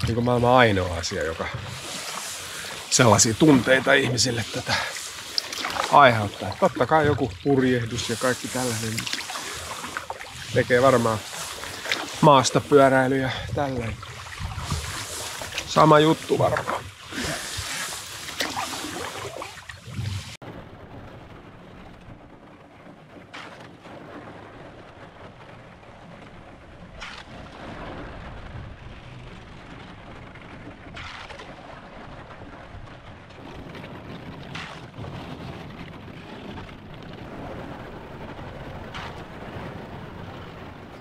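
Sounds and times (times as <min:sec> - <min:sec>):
canoe paddle strokes through ice: 0:00.0 - 0:20.4, 0:22.9 - 0:24.6, 0:26.3 - 0:29.8, 0:30.4 - 0:41.0.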